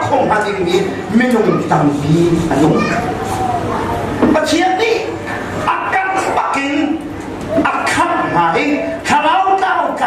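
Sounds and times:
man preaching into microphone: 0.0s - 3.2s, 4.3s - 10.0s.

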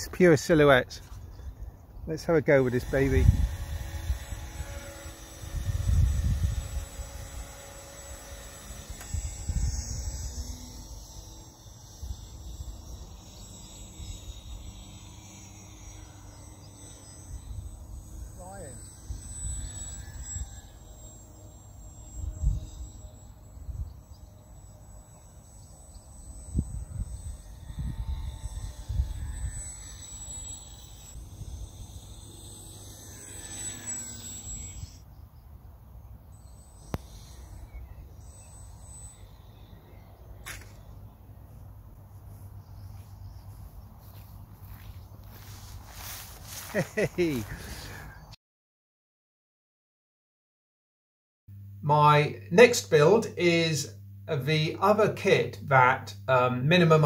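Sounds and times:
wind buffeting microphone: 3.1s - 4.8s, 5.4s - 7.4s
faint steady high tone: 4.3s - 41.7s.

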